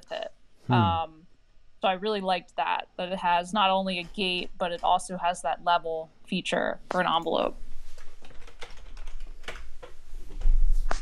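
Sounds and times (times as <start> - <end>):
computer keyboard clicks: 8.2 - 9.6.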